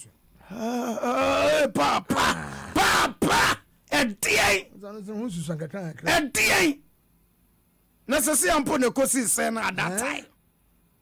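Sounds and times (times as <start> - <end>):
person shouting: 0.6 - 3.6.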